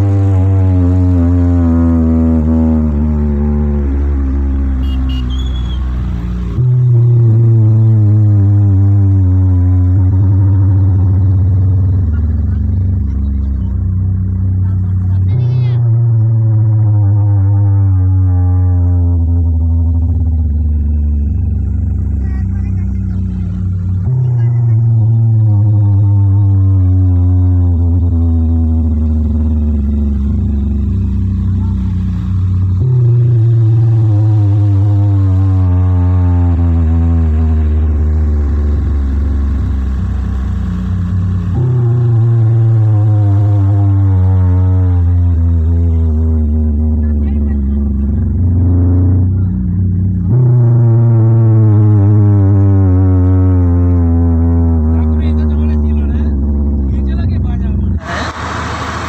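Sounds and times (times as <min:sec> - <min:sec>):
bass-heavy electronic tone gliding down: 0:00.0 - 0:59.0.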